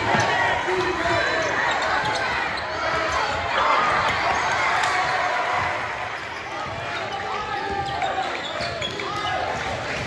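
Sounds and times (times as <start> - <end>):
voices of players and crowd: 0.0 - 10.0
sneakers squeaking on hardwood: 5.0 - 9.4.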